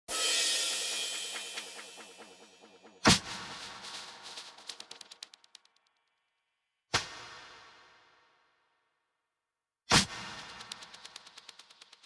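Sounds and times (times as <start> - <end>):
cymbal crash: 0.1 - 3.9.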